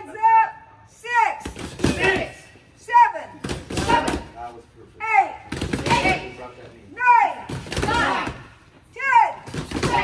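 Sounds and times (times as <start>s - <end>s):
boxing gloves hitting mitts: 9.5s - 10.0s.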